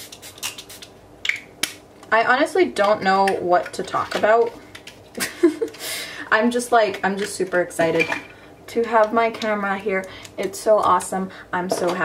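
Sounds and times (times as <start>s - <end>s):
spray bottle spritzing: 0.0s - 0.9s.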